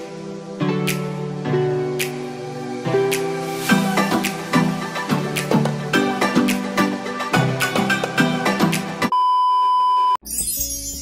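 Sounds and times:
music: 0.0 - 9.1, 10.2 - 11.0.

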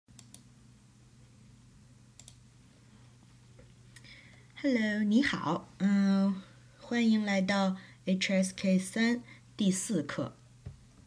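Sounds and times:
faint computer clicks: 0.1 - 0.5, 2.2 - 2.4
low steady hum: 0.1 - 11.0.

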